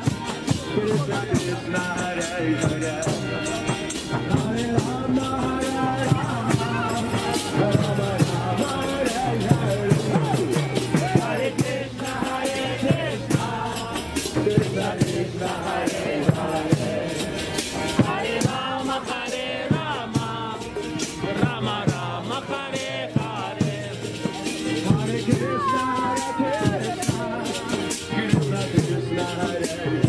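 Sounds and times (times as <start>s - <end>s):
drum strokes: 0.0s - 29.7s
hand cymbals: 0.0s - 30.0s
voices singing: 0.0s - 30.0s.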